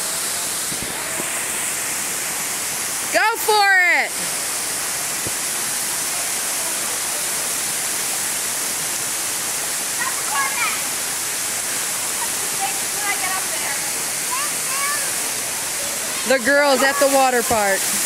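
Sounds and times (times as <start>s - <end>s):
waterfall rushing: 0.0s - 18.0s.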